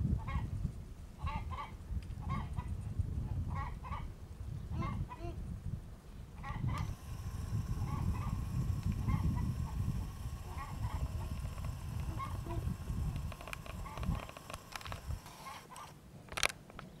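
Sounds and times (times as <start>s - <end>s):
steady low rumble: 6.7s - 15.3s
fowl calling: 7.8s - 12.7s, 13.4s - 15.9s.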